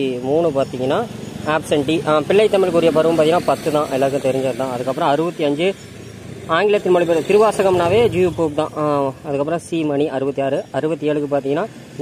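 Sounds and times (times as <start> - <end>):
person talking: 6.5 - 11.6.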